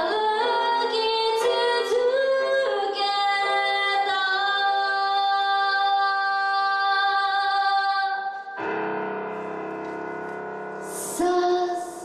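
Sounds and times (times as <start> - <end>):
grand piano: 0.0 - 12.0.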